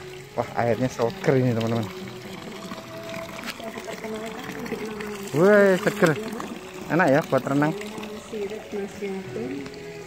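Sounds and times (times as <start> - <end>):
water pouring into a pool: 0.0 - 10.0.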